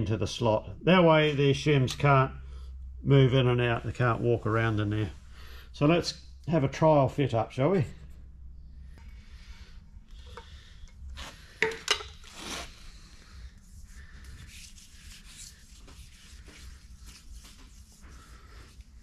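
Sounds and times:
short scrape: 12.2 - 13.0.

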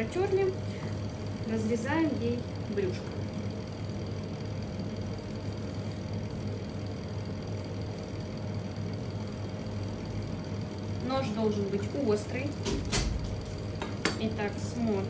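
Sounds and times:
low machine hum: 0.0 - 15.0.

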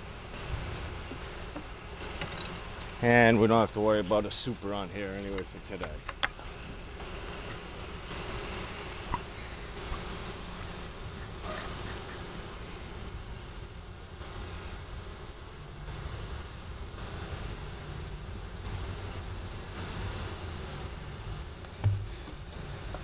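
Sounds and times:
honeybees buzzing: 0.0 - 23.0
knock: 21.8 - 22.1.

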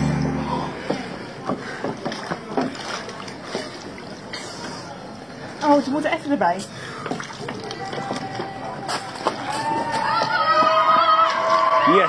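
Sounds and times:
water sloshing and splashing: 0.9 - 9.3.

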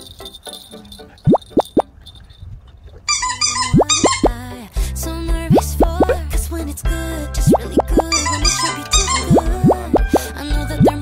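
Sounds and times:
upbeat background music: 3.3 - 11.0
cartoon plop sound effects: 3.5 - 4.4, 5.5 - 6.2, 7.5 - 10.2.

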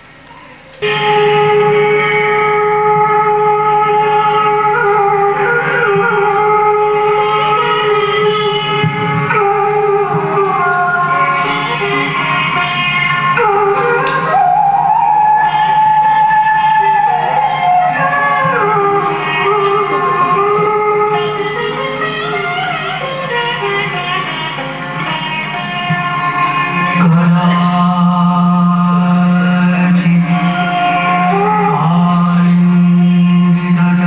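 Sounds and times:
low drone: 0.0 - 23.0
harmonium sustained note: 0.8 - 34.0
sliding devotional melody: 0.8 - 34.0.

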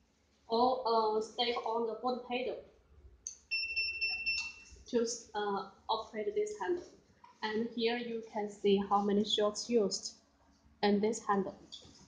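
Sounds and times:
high-pitched electronic beep: 3.5 - 4.7.

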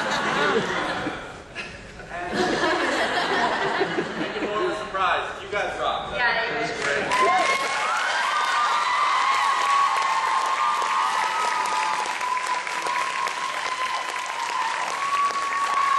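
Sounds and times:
audience applauding: 6.8 - 15.9.

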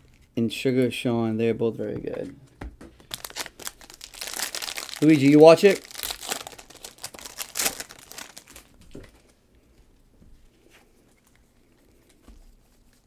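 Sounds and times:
foil wrapper crinkling and tearing: 3.1 - 9.2.

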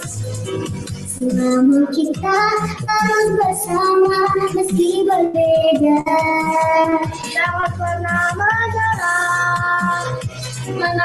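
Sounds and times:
backing music with drum beat: 0.0 - 11.0
child singing: 1.2 - 10.2, 10.8 - 11.0.

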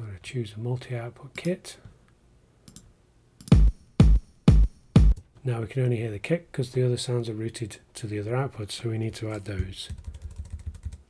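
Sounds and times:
house kick drum: 3.5 - 5.2.

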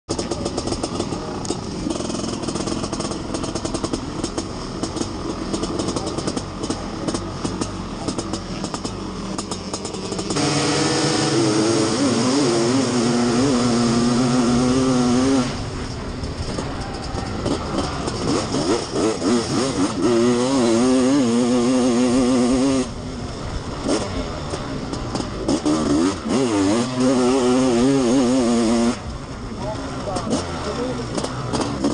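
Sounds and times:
motocross engine revving: 0.1 - 31.9.

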